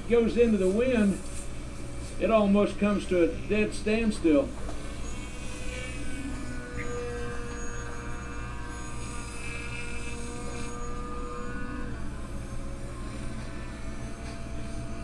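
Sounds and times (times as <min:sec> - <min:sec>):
electric motor and propeller whining: 0:00.0 - 0:15.0
low hum: 0:00.0 - 0:15.0.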